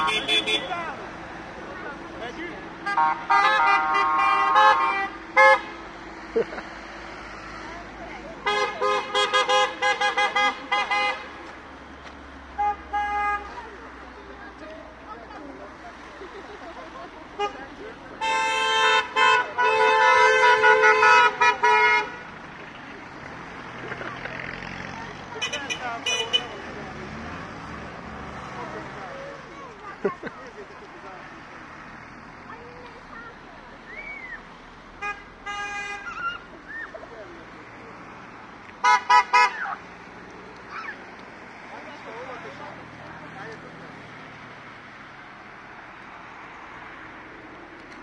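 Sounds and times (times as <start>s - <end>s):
vehicle horns honking: 0.0s - 1.1s, 2.8s - 5.9s, 8.4s - 11.5s, 12.5s - 13.8s, 17.4s - 22.8s, 25.3s - 26.8s, 34.9s - 36.4s, 38.8s - 39.8s.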